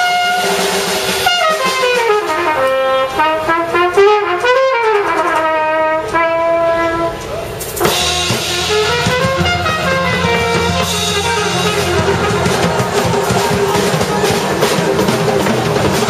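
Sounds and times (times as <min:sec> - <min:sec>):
full band playing: 0:00.0 - 0:16.0
trumpet solo: 0:00.0 - 0:16.0
drum hit: 0:07.8 - 0:16.0.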